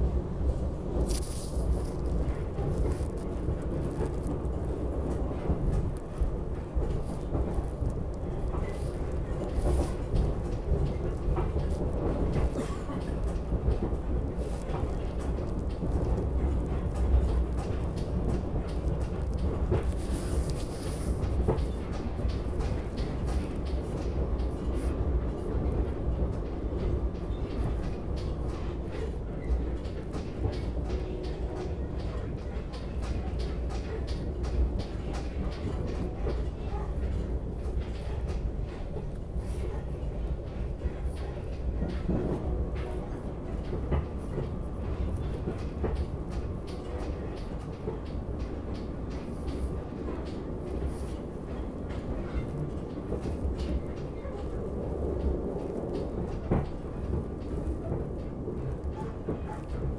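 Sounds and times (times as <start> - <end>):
train wheels rumbling on track: 0.0 - 59.9.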